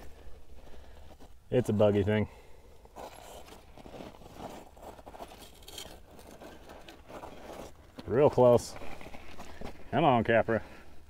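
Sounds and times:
toy car tires scraping rock: 3.0s - 9.7s.

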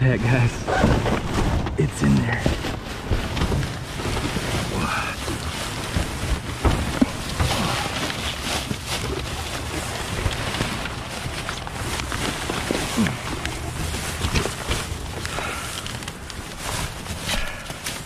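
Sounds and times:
cardboard rustling: 0.0s - 18.0s
plastic wrap crinkling: 0.3s - 18.0s.

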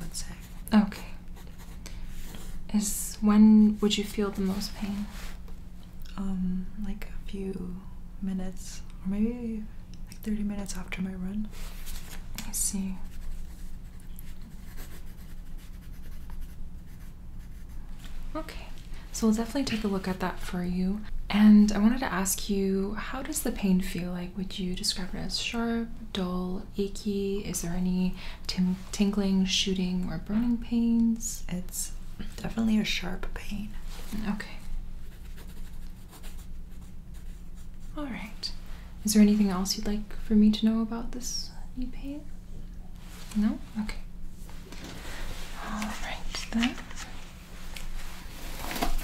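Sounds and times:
low steady hum: 0.0s - 49.0s
pencil scratching on paper: 0.3s - 2.6s, 12.9s - 17.8s, 35.0s - 38.0s.

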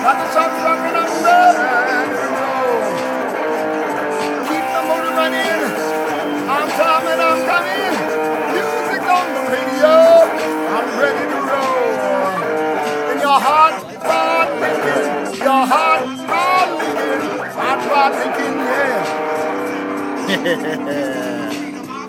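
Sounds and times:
electric guitar strummed: 0.0s - 22.0s
man's voice: 0.0s - 22.0s.

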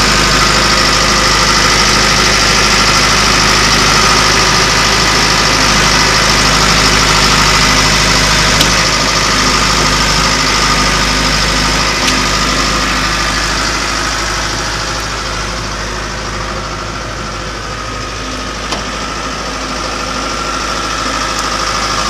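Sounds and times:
diesel engine idling: 0.0s - 22.0s.

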